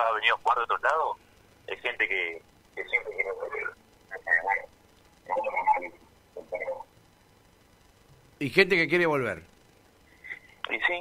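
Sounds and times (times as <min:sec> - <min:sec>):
person speaking over phone line: 0:00.0 - 0:04.7, 0:05.3 - 0:06.8, 0:10.7 - 0:11.0.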